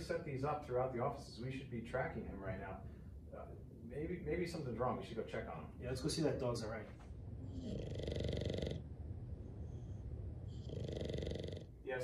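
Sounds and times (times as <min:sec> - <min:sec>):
dog snoring: 0:07.4 - 0:12.0.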